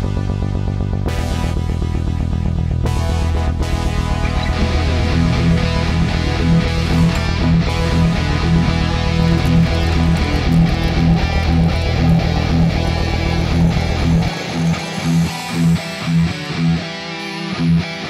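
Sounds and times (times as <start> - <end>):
electric guitar: 0.0 - 18.0.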